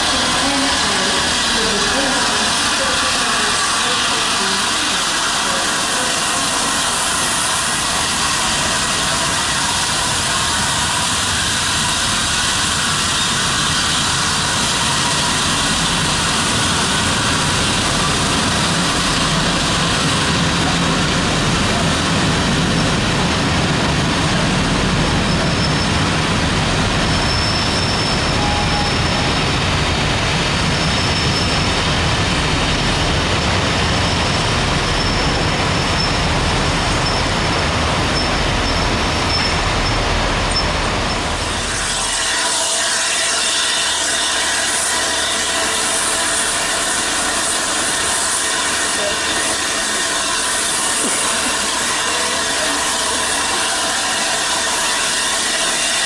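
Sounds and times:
train wheels rolling on rail: 0.0 - 56.0.

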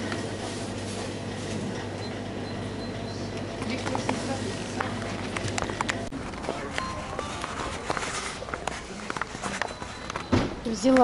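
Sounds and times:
indistinct background voices: 3.6 - 10.3
footsteps: 3.9 - 11.0.

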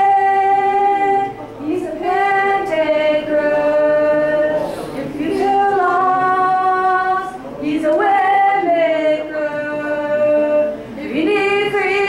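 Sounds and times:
woman singing a hymn: 0.0 - 12.0.

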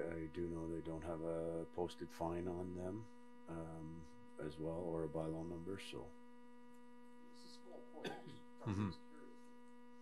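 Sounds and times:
electrical hum: 0.0 - 10.0
faint murmur of voice: 7.4 - 9.6.

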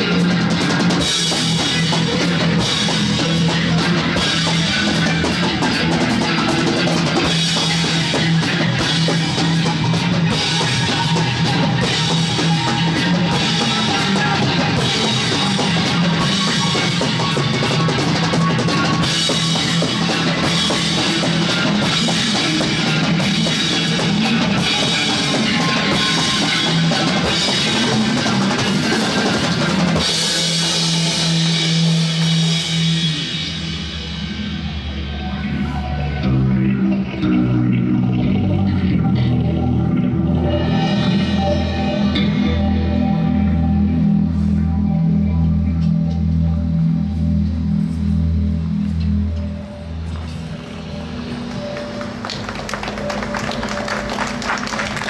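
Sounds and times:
drum kit played with mallets: 0.0 - 34.5
electric guitar and bass tones: 0.0 - 55.0
cymbals ringing: 1.0 - 36.2, 40.4 - 55.0
pulsing low note: 33.7 - 54.6.

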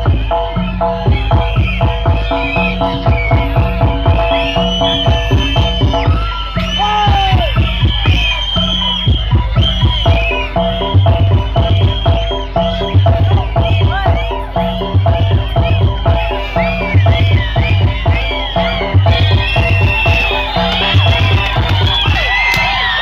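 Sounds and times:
fast drum beat: 0.0 - 23.0
high gliding shouts or whistles: 0.0 - 23.0
percussion music: 0.0 - 23.0.

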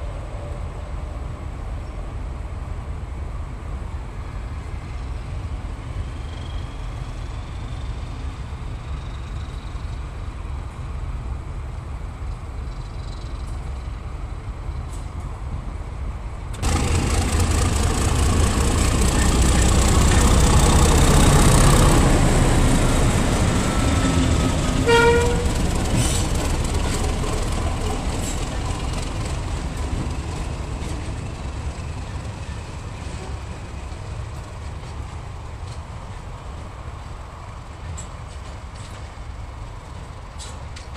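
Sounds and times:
diesel locomotive engine running: 13.4 - 40.9
train horn toot: 24.8 - 25.6.

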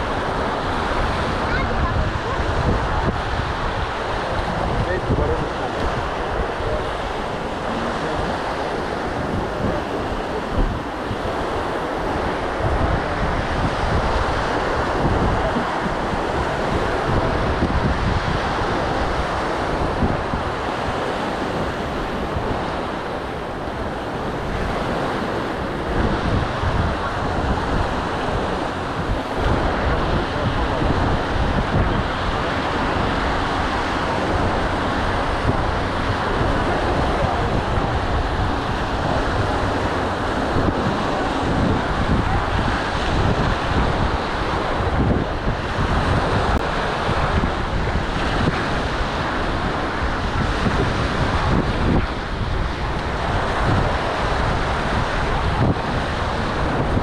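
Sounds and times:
waves breaking on a beach: 0.0 - 57.0
wind buffeting microphone: 0.0 - 57.0.

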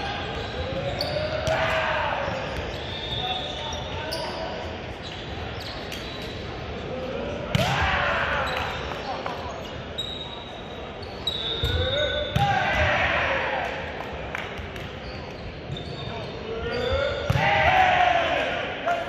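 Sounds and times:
sneakers squeaking on hardwood: 15.0 - 17.4
players shouting: 16.5 - 19.0.

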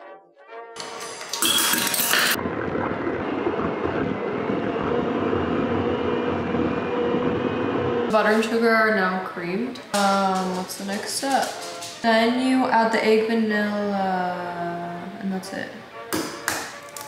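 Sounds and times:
electric mixer motor drone: 2.2 - 8.6.

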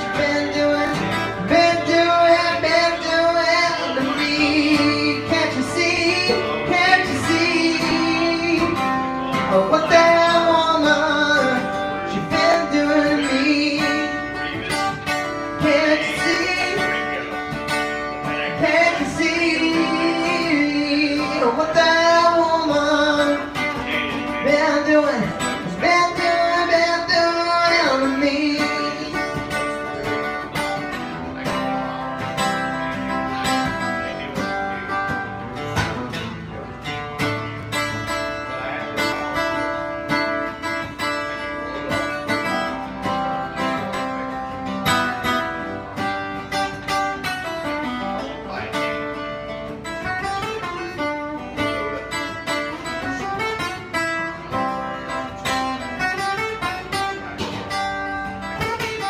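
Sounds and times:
man singing: 0.0 - 35.7
strummed acoustic guitar: 0.0 - 59.0.

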